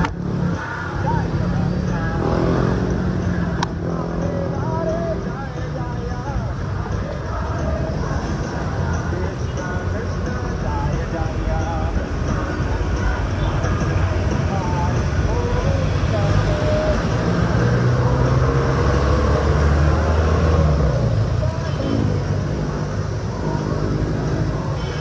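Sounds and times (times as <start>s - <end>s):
car and motorcycle engines: 0.0s - 25.0s
road and wind rumble: 0.0s - 25.0s.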